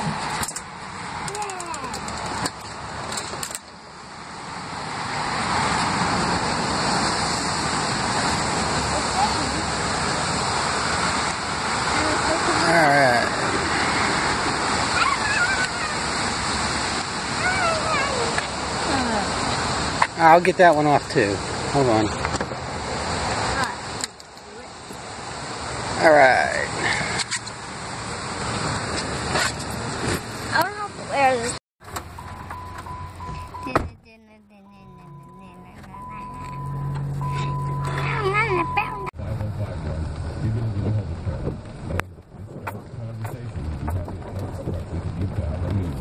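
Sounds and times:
rain falling outdoors: 0.0 - 32.2.

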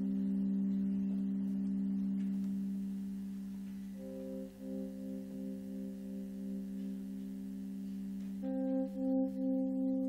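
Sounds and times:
sustained droning notes: 0.0 - 10.0.

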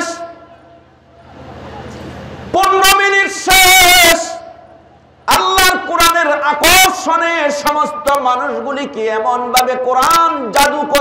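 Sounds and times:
man preaching over loudspeakers: 0.0 - 0.7, 2.5 - 11.0
sound system hum: 0.0 - 11.0.

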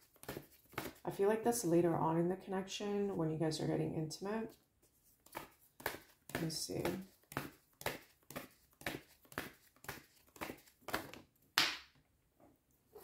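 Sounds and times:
paper cards shuffled by hand: 0.0 - 1.0, 5.0 - 11.3.

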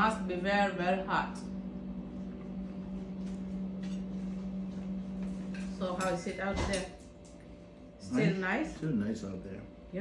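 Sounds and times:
appliance electrical hum: 0.0 - 10.0.

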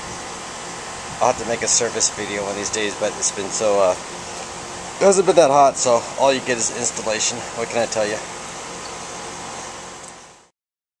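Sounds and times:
air conditioner unit running: 0.0 - 10.5.

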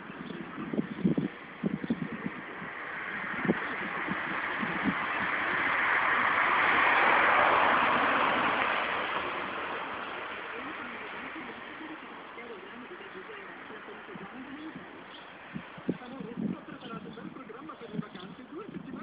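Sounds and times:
car passing: 0.0 - 18.7.

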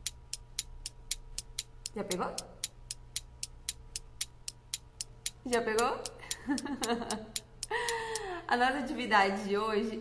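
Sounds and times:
clock ticking: 0.0 - 8.4
faint steady hum: 0.0 - 10.0.

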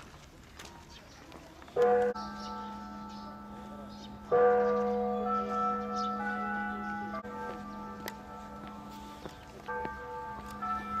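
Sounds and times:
large bell ringing: 1.8 - 11.0.

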